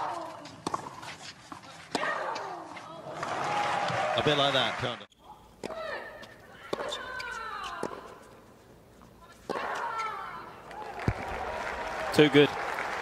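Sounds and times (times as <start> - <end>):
racket striking tennis ball: 5.6 - 8.3.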